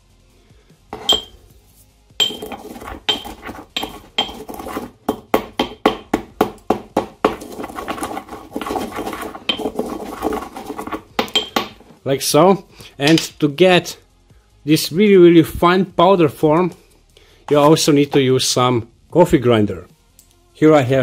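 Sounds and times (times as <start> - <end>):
pestle scraping in mortar: 0.9 - 1.3, 2.2 - 12.0, 17.5 - 18.2
pestle knocking in mortar: 2.2 - 12.0.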